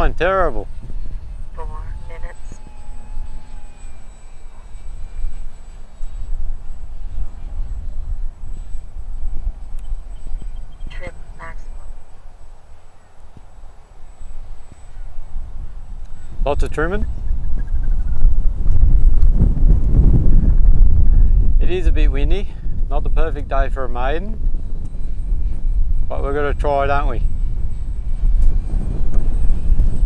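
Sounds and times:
model plane motor whine: 0:00.0 - 0:30.0
wind rumbling on microphone: 0:00.0 - 0:30.0.

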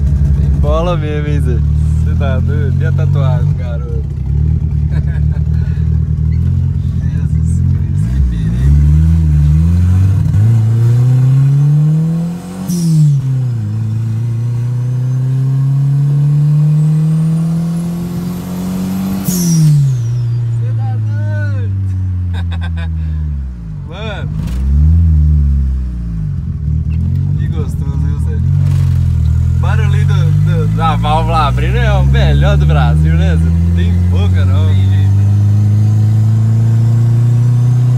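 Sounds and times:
car engine accelerating: 0:00.0 - 0:37.9.

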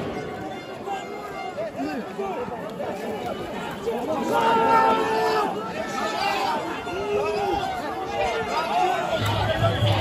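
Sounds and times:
crowd shouting and talking: 0:00.0 - 0:10.0
loud drawn-out shout: 0:04.1 - 0:10.0.

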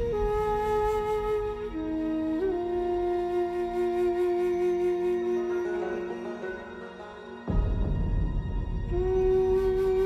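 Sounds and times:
slow film score melody: 0:00.0 - 0:10.0.

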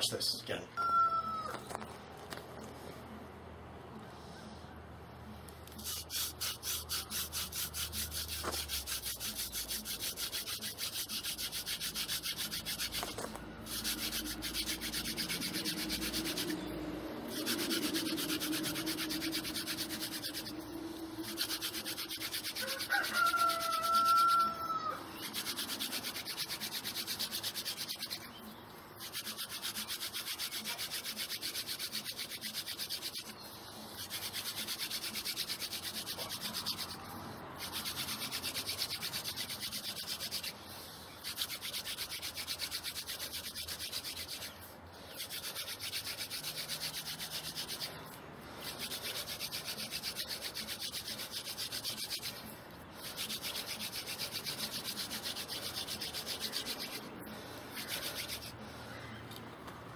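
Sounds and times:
hand drill scratchy rubbing on wood: 0:05.7 - 0:28.4, 0:29.0 - 0:58.6.

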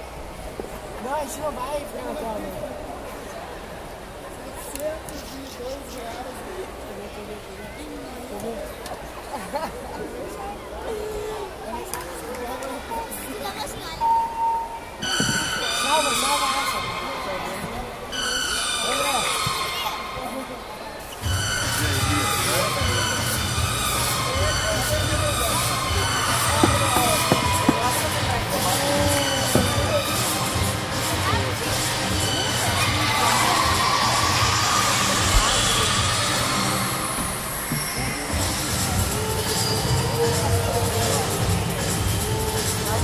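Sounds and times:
echoing chatter of many voices: 0:00.0 - 0:43.0
music over hall speakers: 0:21.2 - 0:43.0
crowd cheering: 0:26.3 - 0:30.6, 0:32.6 - 0:38.3.

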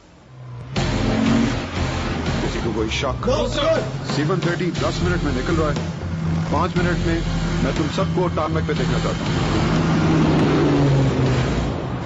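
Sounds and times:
loud rushing noise: 0:03.8 - 0:12.0.

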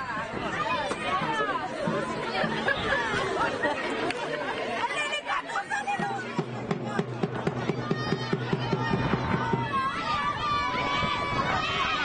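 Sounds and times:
women shouting: 0:04.8 - 0:12.0.

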